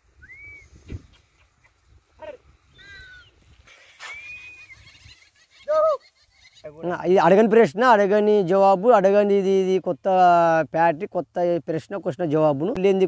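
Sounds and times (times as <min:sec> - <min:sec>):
high animal calls: 0:00.2 - 0:06.8.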